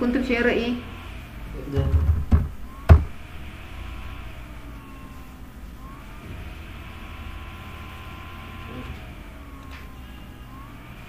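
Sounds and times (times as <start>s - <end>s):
distant road traffic rumble: 0.0s - 11.0s.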